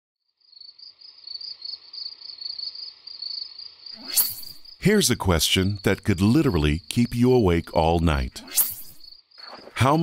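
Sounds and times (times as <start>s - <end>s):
crickets chirping: 0.3s - 10.0s.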